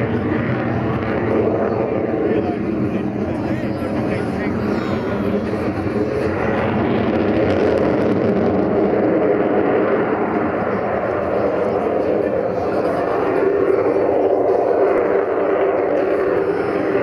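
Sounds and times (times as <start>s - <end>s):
jet roar overhead: 0.0s - 17.0s.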